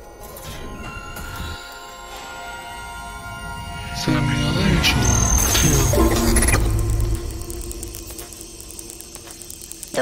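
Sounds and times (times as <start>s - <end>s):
crackling noise burst: 5.0s - 10.0s
low rumble: 5.3s - 10.0s
rapid mechanical clicks: 6.3s - 10.0s.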